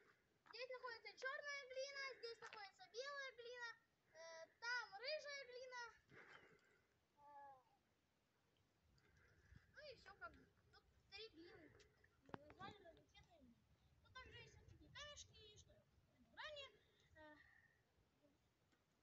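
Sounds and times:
children calling and talking: 0.0s - 6.6s, 9.1s - 17.7s.

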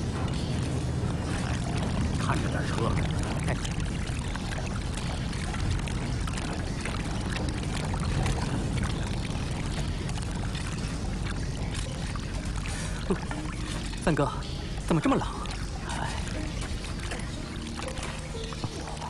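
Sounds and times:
steady low rumble: 0.0s - 19.0s
water sloshing and running: 0.0s - 19.0s
footsteps splashing through water: 1.2s - 19.0s.

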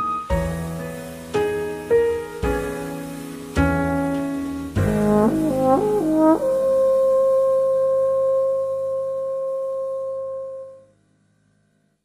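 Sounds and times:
soft low accompaniment chord: 1.7s - 10.9s
french horn long note: 4.8s - 10.8s.

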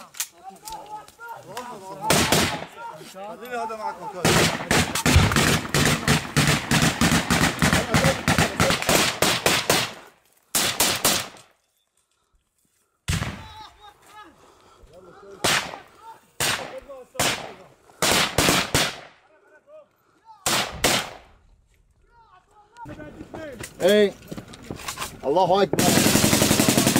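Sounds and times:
automatic rifle gunfire: 2.1s - 2.7s, 4.2s - 10.0s, 16.4s - 19.1s, 20.5s - 21.2s, 25.8s - 26.9s.

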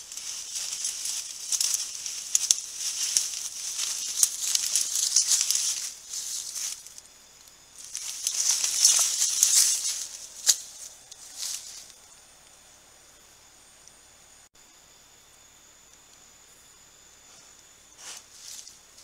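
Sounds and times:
dry leaves rustling and crackling: 0.0s - 7.0s, 7.8s - 12.0s
faint insect hiss: 0.0s - 19.0s.

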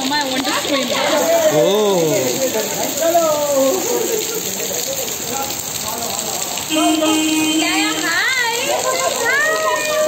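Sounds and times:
voices calling out: 0.0s - 10.0s
water splashing in pool: 0.0s - 10.0s.

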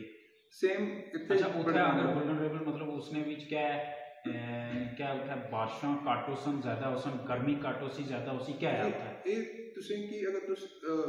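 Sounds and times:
man holding long vowel: 0.6s - 3.7s, 4.3s - 11.0s
man speaking: 0.6s - 11.0s.

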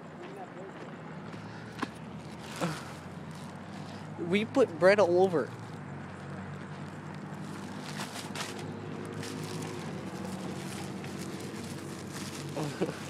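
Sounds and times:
low motor hum: 1.0s - 13.0s.

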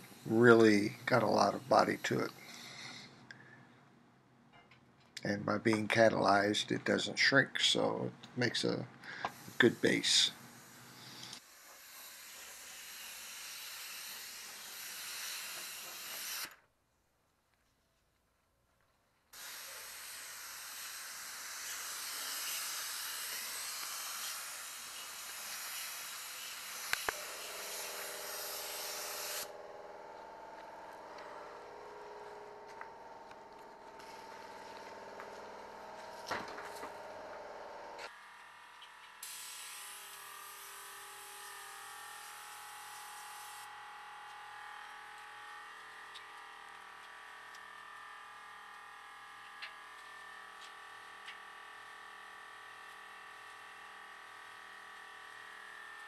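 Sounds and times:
paint spray gun hissing: 0.0s - 2.8s, 9.2s - 16.5s, 19.4s - 38.1s, 39.2s - 43.7s
steady hum with several tones: 26.6s - 39.1s.

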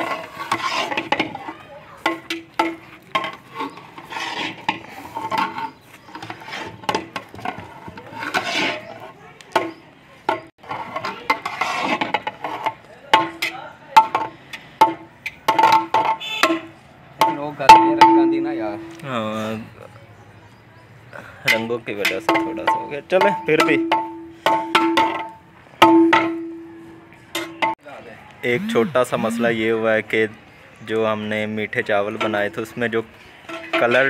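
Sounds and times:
metal ladle scraping rice: 0.0s - 1.2s, 3.4s - 6.8s, 8.1s - 9.1s, 10.6s - 12.7s.

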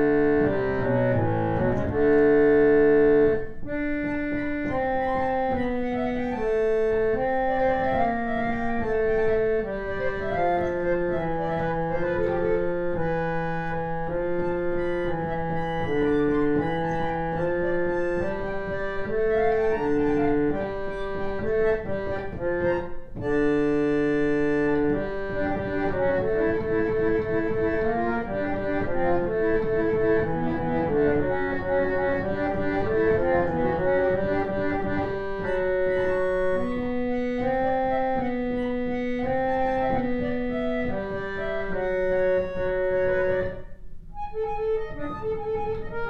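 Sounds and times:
reed organ playing counterpoint: 0.0s - 46.0s.

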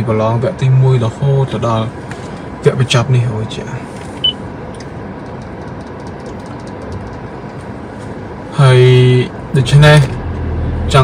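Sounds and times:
car cabin hum: 0.0s - 11.0s.

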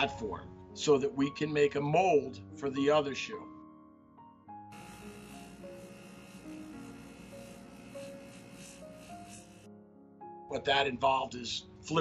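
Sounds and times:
soft background music: 0.0s - 12.0s
small electric motor whirring: 4.7s - 9.7s.

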